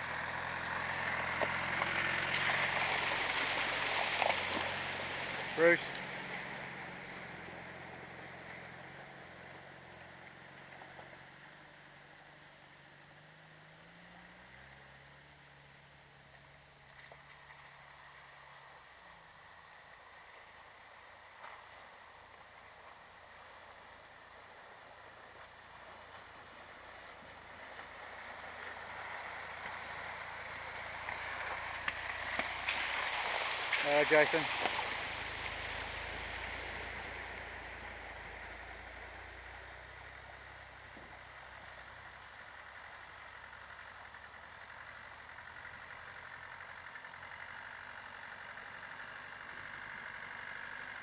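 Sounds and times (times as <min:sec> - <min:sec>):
vehicle engines running: 0:00.0 - 0:51.0
rush of running water: 0:01.4 - 0:06.5, 0:25.2 - 0:39.6.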